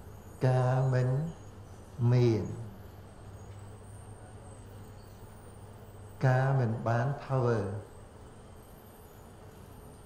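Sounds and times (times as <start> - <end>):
background hiss: 0.0 - 10.0
faint low hum: 0.0 - 10.0.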